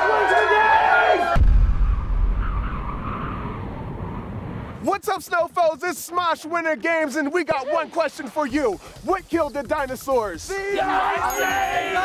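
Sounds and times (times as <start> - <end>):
deep boom sound effect: 1.4 - 2.6
group shout: 10.7 - 12.0.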